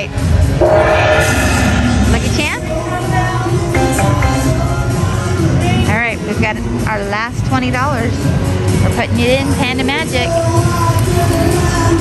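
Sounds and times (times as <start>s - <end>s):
slot machine horn-like chord: 3.7s - 5.3s.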